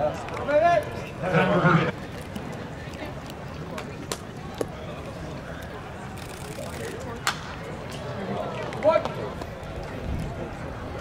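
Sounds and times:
scattered voices: 0.0 - 11.0.

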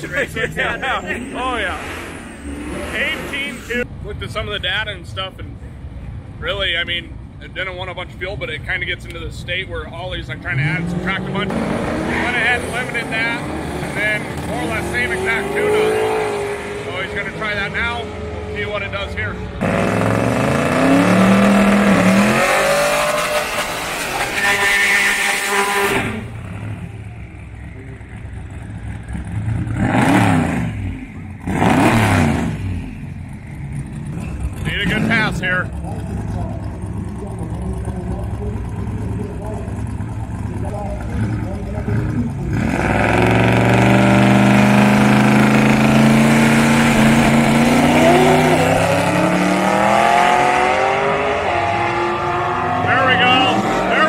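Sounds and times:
drag car engine revving: 0.0 - 3.9, 8.8 - 54.0
engine accelerating through gears: 28.2 - 54.0.

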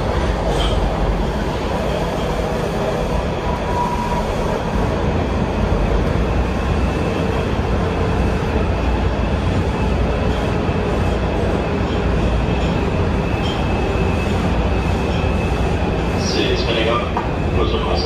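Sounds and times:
train wheels rumbling on rails: 0.0 - 18.0.

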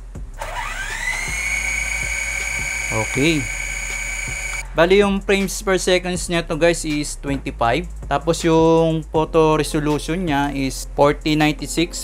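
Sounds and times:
quadcopter motors whining: 0.4 - 4.6.

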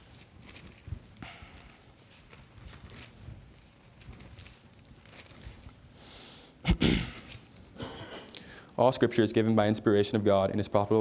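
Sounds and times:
pages turning: 0.0 - 6.0, 7.1 - 7.7.

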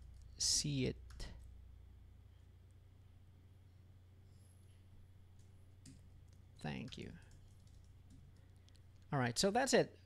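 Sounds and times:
steady low hum: 0.0 - 10.0
computer keyboard clicks: 5.4 - 9.1.

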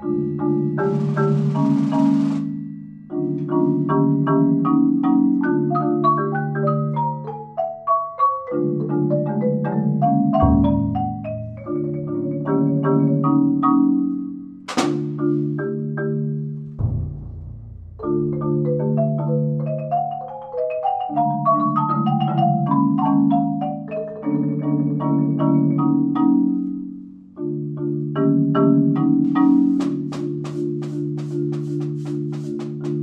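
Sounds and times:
marimba chords: 0.0 - 33.0
high hiss: 0.9 - 2.6
deep low drum hit: 16.8 - 18.4.

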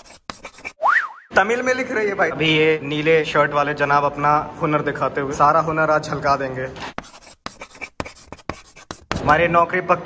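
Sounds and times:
marker writing on whiteboard: 0.0 - 0.8, 6.8 - 9.5.

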